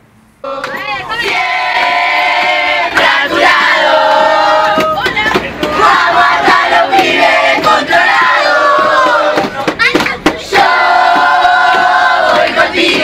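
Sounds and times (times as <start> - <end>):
children chanting football song: 0.4 - 13.0.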